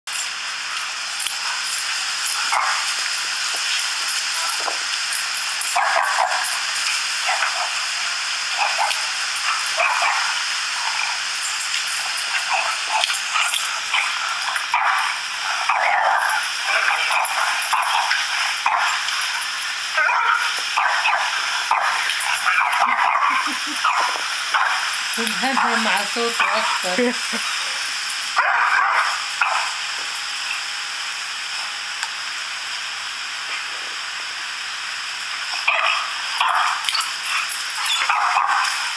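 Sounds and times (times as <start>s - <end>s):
steady hiss: 0.1s - 38.9s
recorded barking on small speaker: 2.3s - 3.7s, 5.6s - 11.3s, 12.0s - 27.8s, 28.4s - 30.1s, 35.5s - 38.9s
dog barking: 2.4s - 2.9s, 5.7s - 6.6s, 8.6s - 10.4s, 12.5s - 19.0s, 20.0s - 24.9s, 25.5s - 26.9s, 28.4s - 29.8s, 35.6s - 38.9s.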